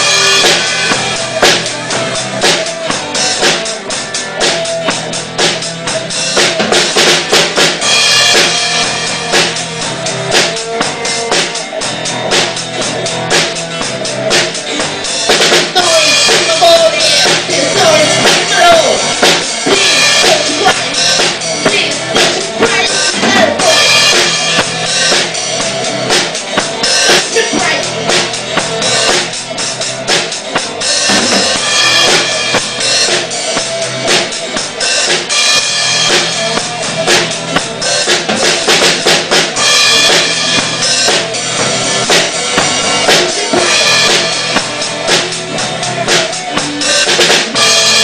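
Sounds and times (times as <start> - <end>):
busy drum kit: 0.0 - 48.0
progressive rock band playing: 0.0 - 48.0.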